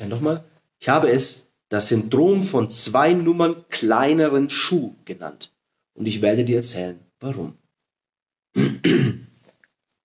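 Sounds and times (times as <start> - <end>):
man clearing his throat: 8.5 - 9.4.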